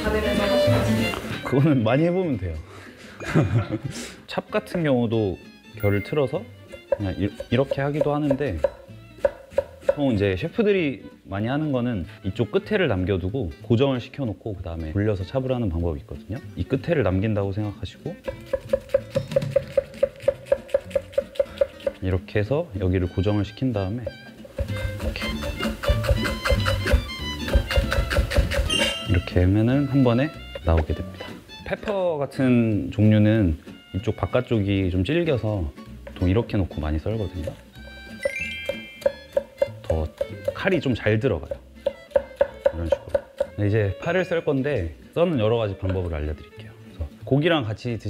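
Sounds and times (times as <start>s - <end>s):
plucked guitar background music: 0.0s - 48.0s
knife slicing onion on wooden board: 6.6s - 10.2s, 18.2s - 22.2s, 24.0s - 29.3s, 38.6s - 43.6s
knife slicing on wooden board: 18.2s - 22.0s, 24.6s - 29.1s.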